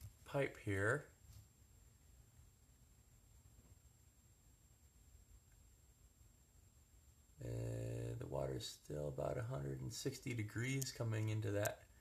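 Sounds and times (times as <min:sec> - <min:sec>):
faint low rumble: 0:00.0 - 0:12.0
man saying uhhh: 0:07.4 - 0:08.7.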